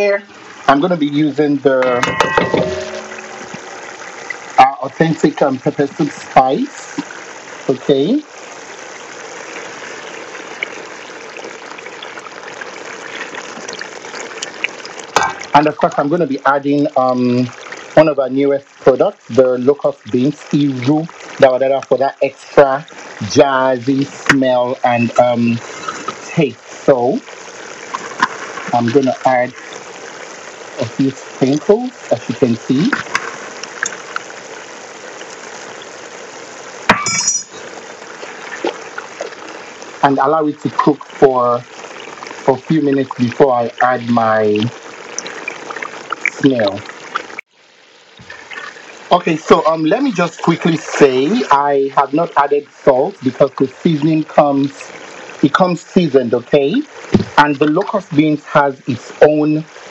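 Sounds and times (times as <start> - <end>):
sauce sizzling and bubbling: 0.0 - 59.9
stirring: 24.1 - 31.7, 32.8 - 34.4.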